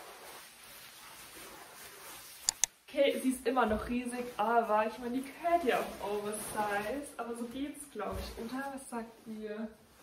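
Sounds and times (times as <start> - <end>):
coat fabric rustling: 0.0 - 10.0.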